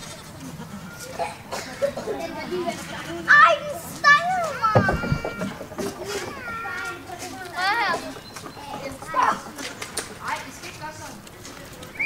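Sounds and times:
children calling and chattering: 0.0s - 12.0s
short knocks: 4.6s - 6.4s.

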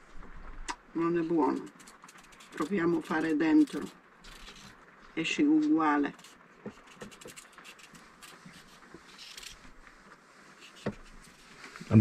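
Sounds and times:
knife scraping carrot: 1.2s - 4.8s, 6.1s - 9.7s, 10.6s - 11.6s.

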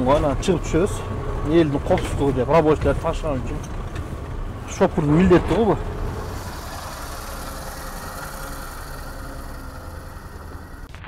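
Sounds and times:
faint steady whine: 0.0s - 11.0s
truck engine droning: 0.0s - 11.0s.

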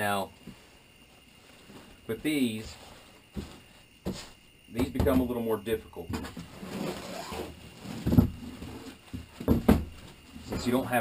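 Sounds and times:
dull thumps of plates: 2.6s - 6.6s, 7.8s - 11.0s
fabric rustling: 6.2s - 10.2s.

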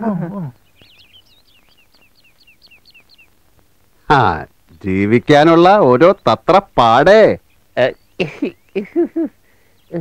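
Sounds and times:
small bird chirping: 0.1s - 10.0s.

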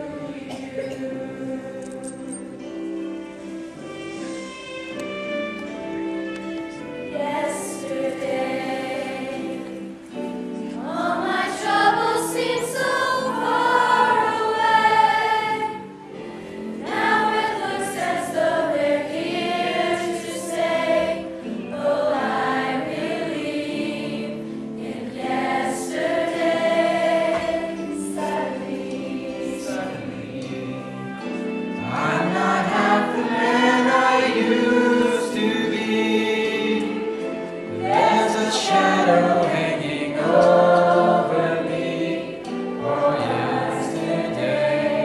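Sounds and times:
choir singing in harmony: 0.0s - 45.0s.

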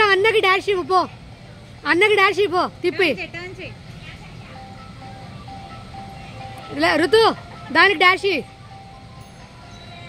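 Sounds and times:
simple electronic tune: 4.5s - 9.8s.

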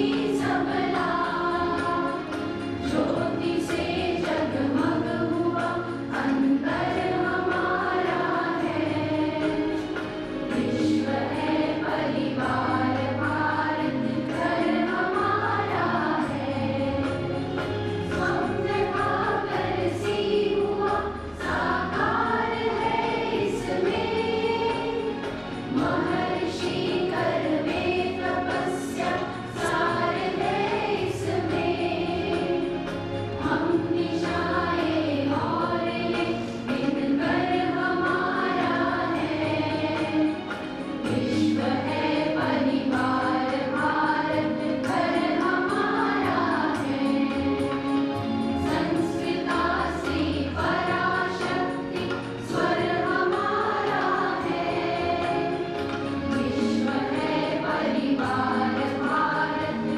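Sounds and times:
group of people singing: 0.0s - 59.9s.

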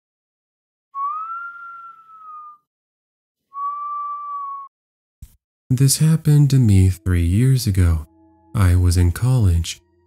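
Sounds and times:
whistle-like synthetic tone: 1.0s - 2.7s, 3.5s - 4.7s.

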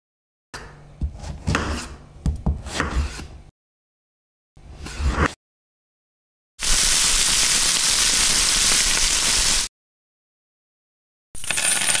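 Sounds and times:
food sizzling in a pan: 6.6s - 9.7s.

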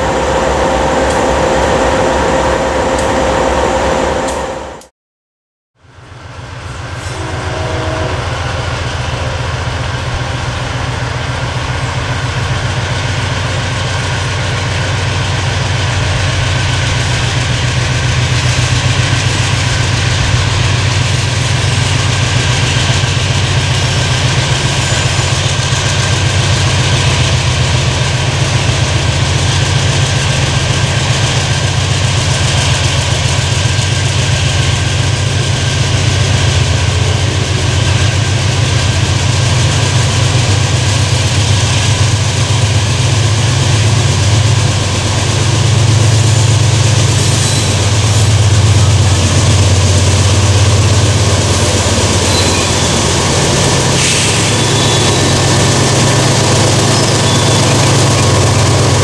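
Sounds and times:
locomotive engine rumble: 5.9s - 59.0s
high-pitched whine: 45.9s - 59.0s.

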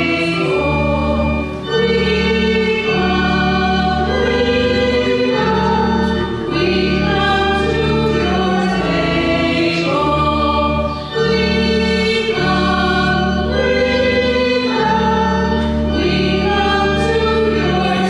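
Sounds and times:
choir singing a slow hymn: 0.0s - 18.0s.

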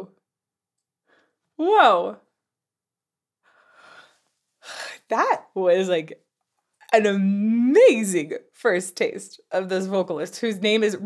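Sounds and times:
woman breathing and gasping: 3.4s - 5.1s.

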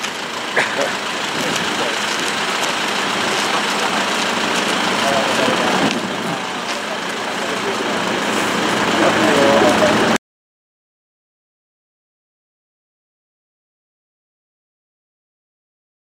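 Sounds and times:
loud outdoor noise: 0.0s - 10.2s
faint voices talking: 0.6s - 10.2s.

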